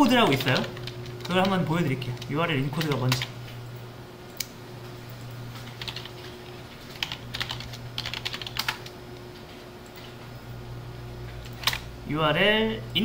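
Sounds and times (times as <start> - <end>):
keyboard typing: 0.0 - 3.3, 5.6 - 9.0, 11.4 - 11.8
steady low hum: 0.0 - 13.0.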